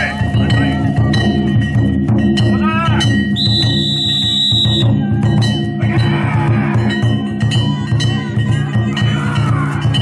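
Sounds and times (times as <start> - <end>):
taiko drum: 0.0 - 10.0
high held tone: 3.3 - 5.1.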